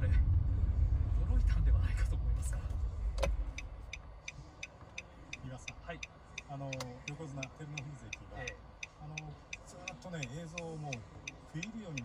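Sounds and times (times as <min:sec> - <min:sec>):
low car rumble: 0:00.0 - 0:12.0
car indicator relay clicking: 0:04.6 - 0:12.0.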